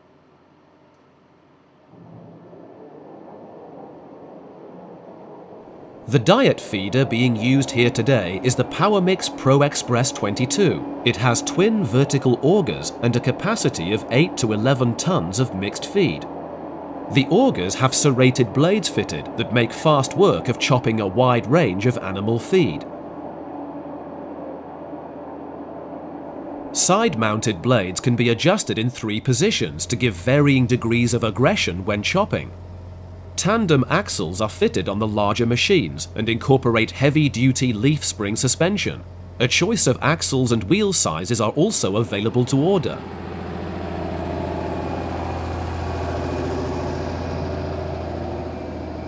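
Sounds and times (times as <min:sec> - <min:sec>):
feeder mixer mechanical drone: 0:01.9 - 0:49.0
farm machinery running: 0:06.0 - 0:23.2, 0:26.6 - 0:49.0.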